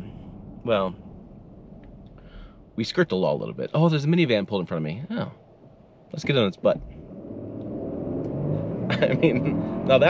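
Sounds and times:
car engine accelerating hard: 0:06.7 - 0:10.0.

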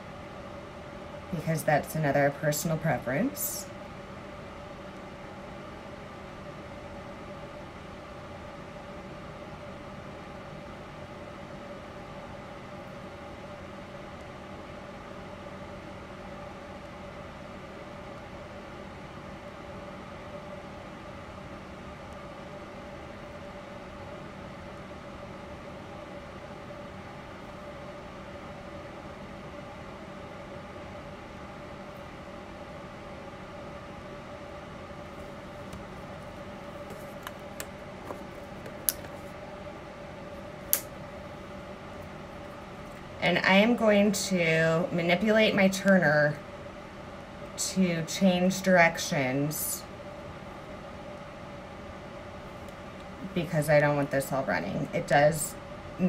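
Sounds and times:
steady motor hum: 0:00.0 - 0:56.0.

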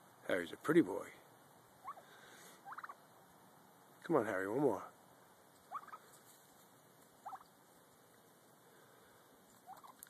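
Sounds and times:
faint squeaky calls: 0:05.6 - 0:06.2, 0:07.2 - 0:07.6, 0:09.6 - 0:10.0.

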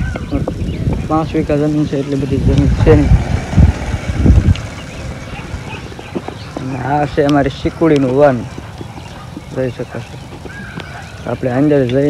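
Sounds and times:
low rumbling bursts on microphone: 0:00.0 - 0:09.6
faint outdoor background: 0:00.0 - 0:12.0
man talking: 0:00.3 - 0:03.4, 0:06.6 - 0:08.5, 0:09.5 - 0:10.2, 0:11.2 - 0:12.0.

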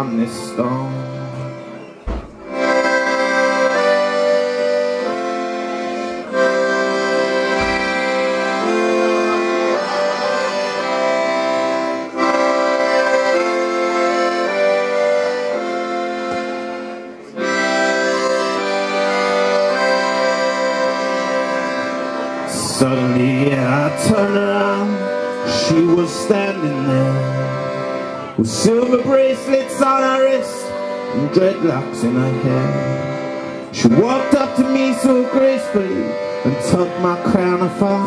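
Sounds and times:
accordion playing chords: 0:00.0 - 0:38.0.

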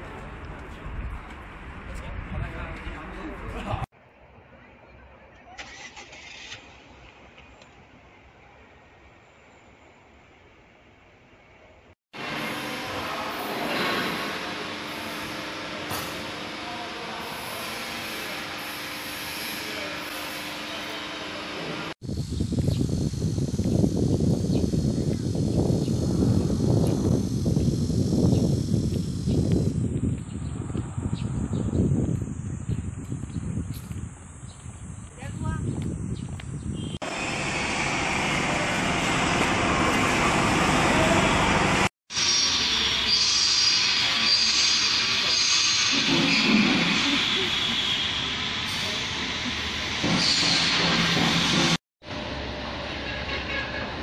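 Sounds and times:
machinery hum with held tones: 0:12.2 - 0:45.3
loud uneven low rumble: 0:22.0 - 0:41.9.

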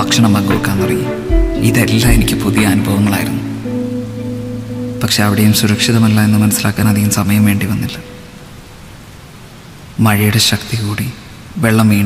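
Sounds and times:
steady hiss like rain: 0:00.0 - 0:12.0.

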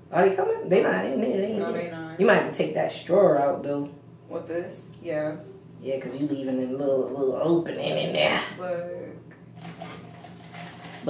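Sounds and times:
low electrical hum: 0:00.0 - 0:11.0
paper napkin rustling: 0:09.6 - 0:11.0.

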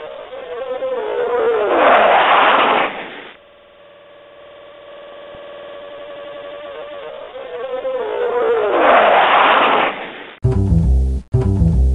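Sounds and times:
steady buzzing tone: 0:00.0 - 0:01.8, 0:02.8 - 0:08.8.

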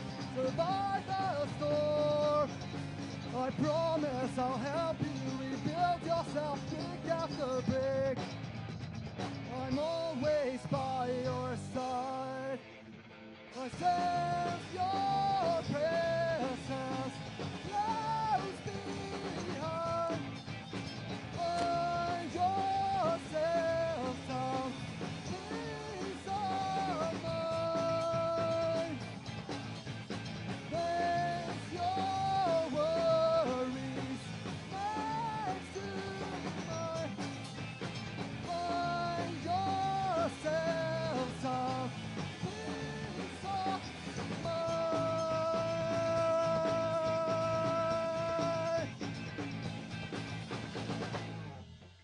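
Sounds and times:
punk rock band playing live: 0:00.0 - 0:51.9
drums: 0:00.0 - 0:52.0
electric guitars: 0:00.0 - 0:52.0.

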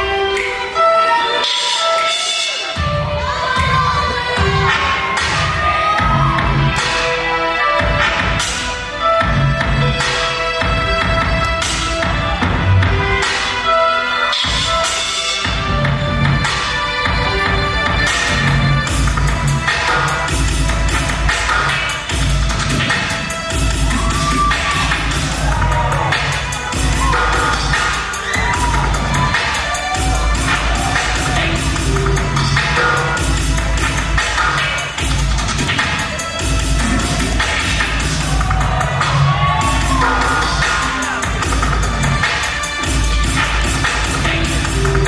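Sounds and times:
hip-hop dance music: 0:00.0 - 0:45.0
audience cheering and whooping: 0:03.3 - 0:08.2, 0:21.6 - 0:33.7, 0:36.8 - 0:42.3.

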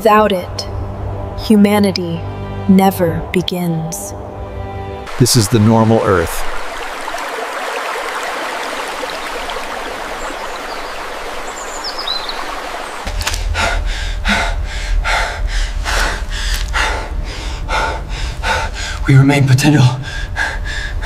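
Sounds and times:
stream running: 0:05.1 - 0:13.4
low rumble: 0:13.1 - 0:21.0
man panting: 0:13.4 - 0:19.1, 0:20.0 - 0:21.0.

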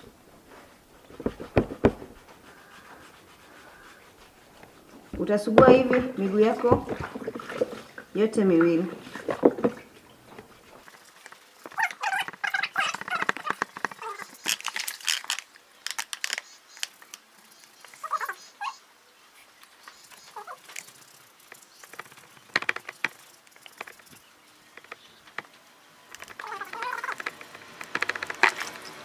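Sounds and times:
water splashing in a plastic basin: 0:00.0 - 0:16.2, 0:20.0 - 0:29.0
pumice stone scraping foot: 0:00.5 - 0:08.1, 0:09.0 - 0:17.0, 0:24.8 - 0:29.0
short pitched animal calls: 0:02.4 - 0:04.5, 0:18.0 - 0:18.9, 0:26.3 - 0:27.3.

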